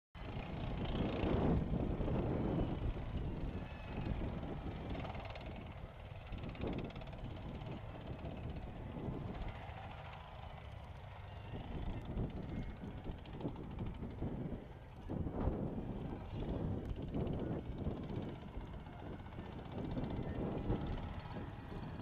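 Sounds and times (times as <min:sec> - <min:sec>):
rumble of tank tracks: 0:00.2 - 0:22.0
tank turbine engines running: 0:00.2 - 0:22.0.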